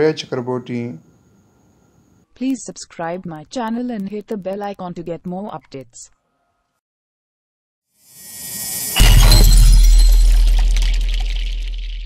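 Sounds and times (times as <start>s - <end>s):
glassy shimmer: 8.1s - 12.0s
loud crash: 8.3s - 12.0s.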